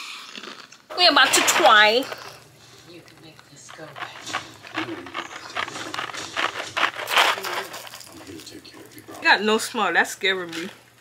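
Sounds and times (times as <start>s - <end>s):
plastic wrapping crinkling: 0.3s - 9.3s.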